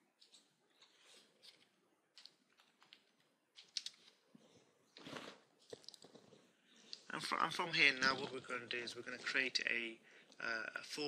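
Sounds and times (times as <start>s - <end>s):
faint keyboard typing: 5.6s - 7.1s.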